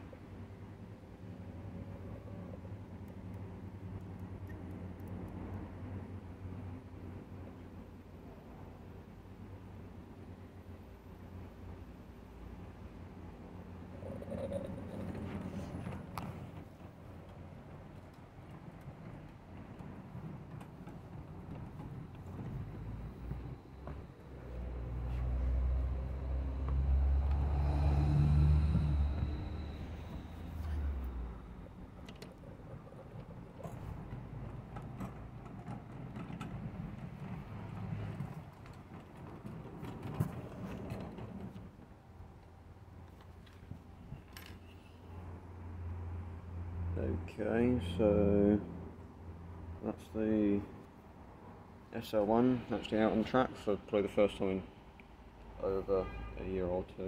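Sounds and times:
model steam locomotive rumble: 4.8s - 41.8s.

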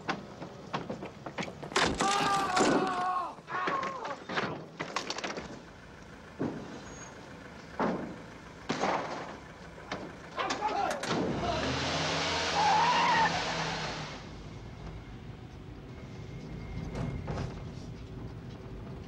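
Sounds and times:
tyres squealing: 0.2s - 5.2s, 10.3s - 14.3s
people shouting: 1.9s - 4.2s, 10.4s - 11.8s, 12.5s - 13.6s
vehicle engine revving hard: 11.2s - 14.4s.

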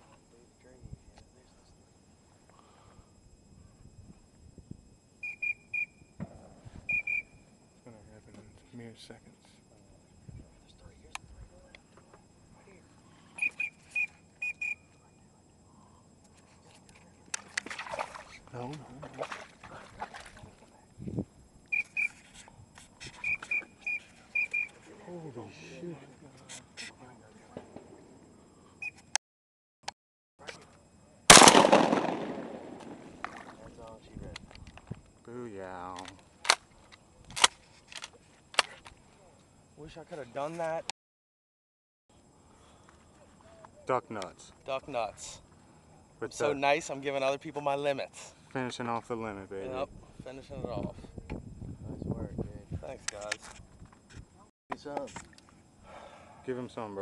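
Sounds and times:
duck whistled peeps: 5.2s - 6.0s, 6.8s - 7.4s, 13.4s - 14.8s, 21.7s - 22.2s, 23.0s - 24.8s
shotgun shots: 31.3s - 33.6s.

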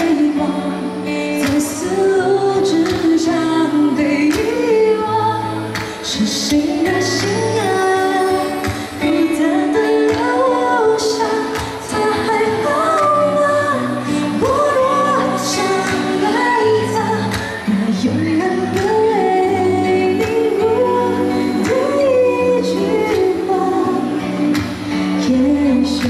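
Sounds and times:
woman singing into a microphone: 0.0s - 26.0s.

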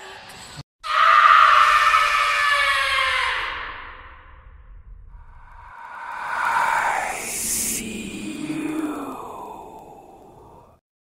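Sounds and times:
echoing whoosh: 4.7s - 10.8s.

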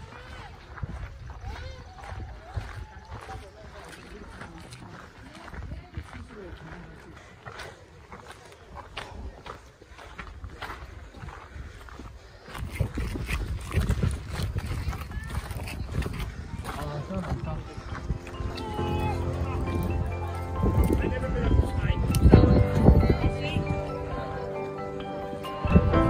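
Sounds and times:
wind rumbling on microphone: 0.0s - 3.7s, 10.2s - 24.5s, 25.6s - 26.0s
footsteps on stone steps: 0.0s - 23.7s
hikers chattering: 0.0s - 26.0s.

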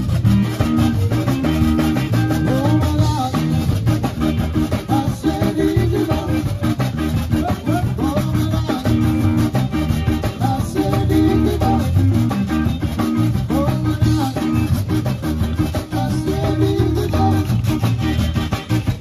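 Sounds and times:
accordion: 0.0s - 19.0s
bass guitar: 0.0s - 19.0s
drum kit: 0.0s - 19.0s
electric guitar: 0.0s - 19.0s.

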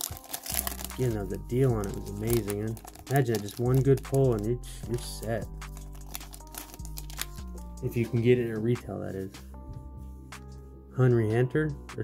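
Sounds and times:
foil wrapper crinkling: 0.0s - 4.5s, 5.7s - 7.5s
background music: 0.0s - 12.0s.

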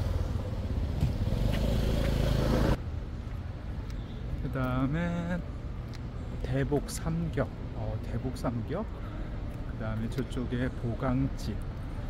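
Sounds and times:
road hiss of passing vehicles: 0.0s - 4.3s
traffic engine rumble: 0.0s - 12.0s.

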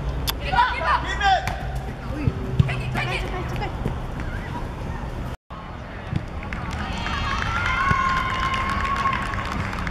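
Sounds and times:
outdoor crowd noise: 0.0s - 9.9s.

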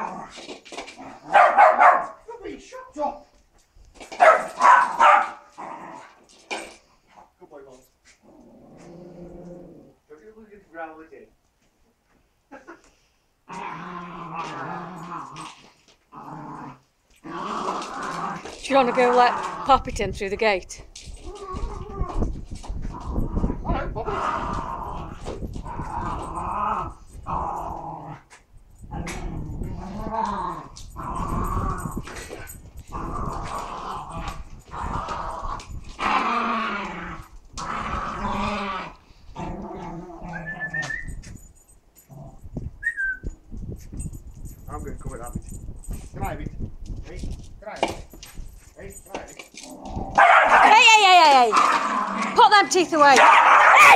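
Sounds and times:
small dog growling: 0.0s - 1.4s, 5.5s - 6.2s, 8.2s - 10.1s, 13.5s - 19.9s, 21.2s - 41.0s, 42.0s - 42.7s, 49.6s - 50.3s, 51.5s - 52.4s
dog whining: 21.2s - 22.3s, 39.8s - 41.4s, 42.8s - 43.4s, 53.2s - 53.9s.

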